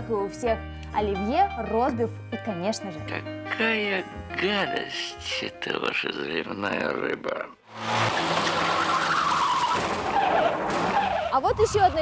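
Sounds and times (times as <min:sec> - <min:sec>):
tyre squeal: 0:07.9 - 0:11.4.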